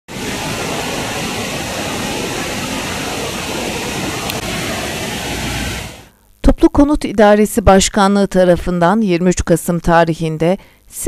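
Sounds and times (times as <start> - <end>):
steady outdoor hiss: 0.1 - 11.0.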